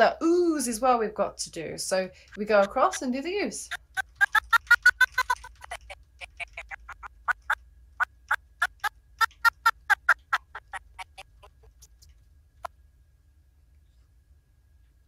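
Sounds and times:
quick blips: 0:03.7 - 0:12.7
chopped voice fragments: 0:05.1 - 0:07.3.

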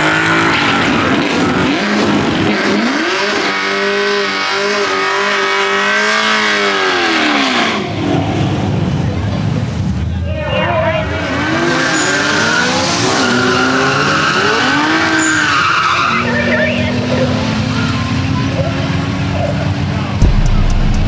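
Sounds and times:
car engine revving: 0:00.0 - 0:08.5, 0:20.2 - 0:21.0
low rumble: 0:20.2 - 0:21.0.

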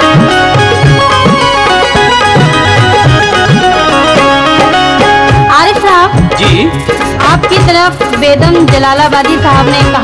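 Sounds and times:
harmonium and keyboard melody: 0:00.0 - 0:10.0.

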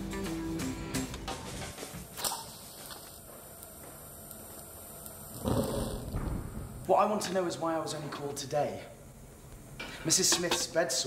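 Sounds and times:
faint gas hiss: 0:01.6 - 0:11.0.

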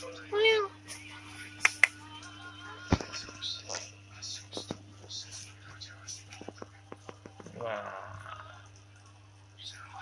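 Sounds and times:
person whispering: 0:09.6 - 0:10.0.

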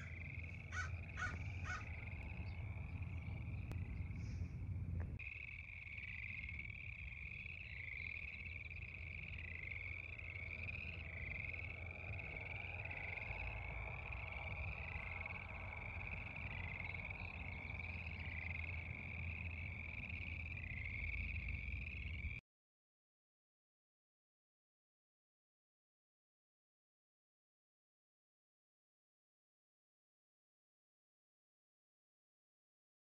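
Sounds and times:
frogs calling: 0:00.0 - 0:22.4
low rumble: 0:00.0 - 0:22.4.

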